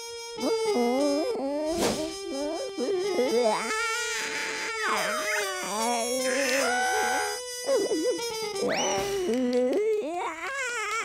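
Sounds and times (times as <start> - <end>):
background music: 0.0 - 10.3
cartoon cat wailing: 3.6 - 7.4.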